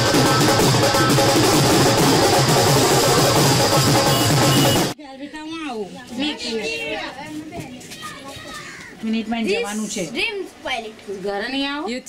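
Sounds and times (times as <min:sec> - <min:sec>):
drum-led street music: 0:00.0 - 0:05.0.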